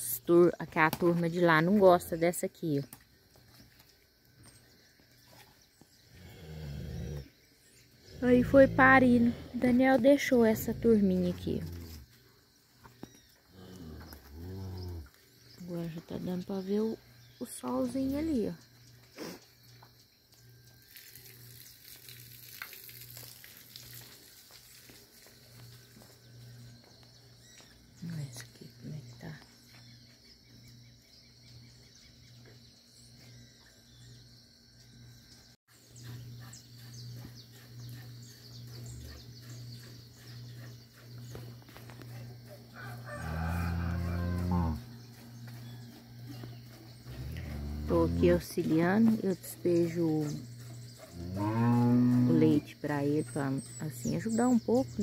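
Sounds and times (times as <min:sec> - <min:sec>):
steady low hum: 0:25.5 - 0:55.0
rooster crowing: 0:42.7 - 0:44.8
cow mooing: 0:43.0 - 0:44.9, 0:47.1 - 0:48.4, 0:51.1 - 0:52.6.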